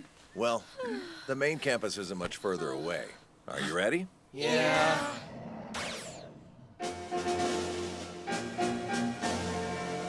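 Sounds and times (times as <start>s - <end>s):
music with held notes: 6.8s - 10.0s.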